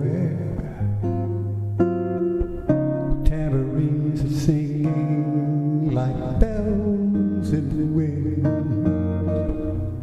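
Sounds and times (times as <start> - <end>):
solo bossa nova guitar: 0.0 - 10.0.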